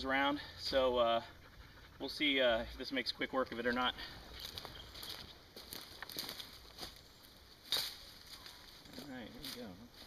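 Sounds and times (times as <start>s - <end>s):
footsteps through leafy branches: 4.3s - 10.0s
sharp branch crack: 7.6s - 9.6s.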